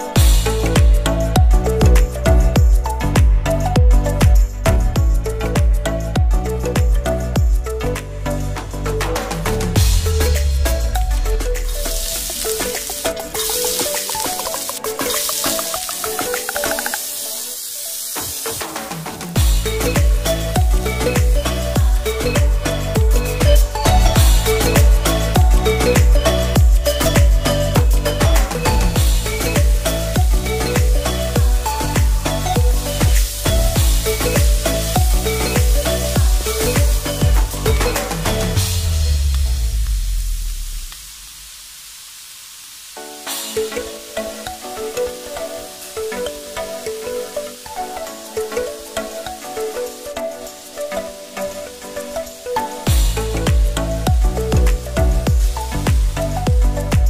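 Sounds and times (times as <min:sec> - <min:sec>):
background music: 0:00.0 - 0:40.9, 0:43.0 - 0:57.0
carrots sizzling in hot oil: 0:10.0 - 0:25.4, 0:29.0 - 0:47.7.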